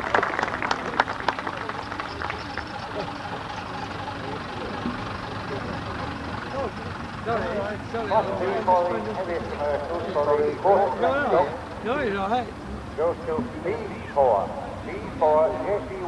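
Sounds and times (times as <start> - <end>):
people clapping: 0.0 - 3.6
bus engine running: 0.0 - 16.0.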